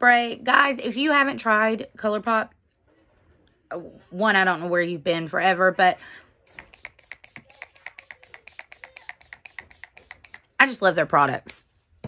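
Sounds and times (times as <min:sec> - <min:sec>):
spray bottle spritzing mist: 0:06.5 - 0:10.5.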